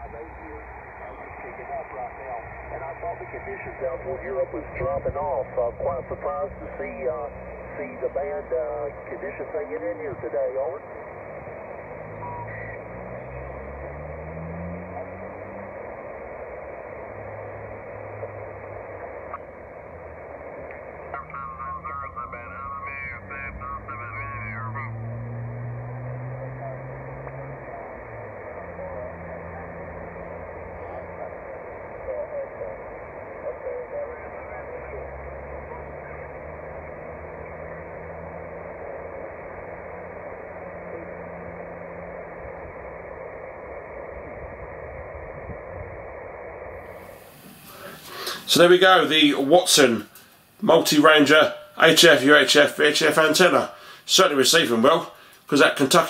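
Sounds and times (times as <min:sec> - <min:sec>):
mistuned sideband voices: 0:00.0 - 0:13.7, 0:14.6 - 0:56.0
warbling pitched signal: 0:00.0 - 0:47.9
radio band hiss: 0:00.0 - 0:56.0.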